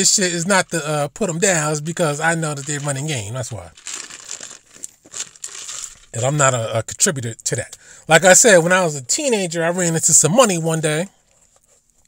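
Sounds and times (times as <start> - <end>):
crinkling and rustling: 2.0 - 6.6, 11.2 - 12.0.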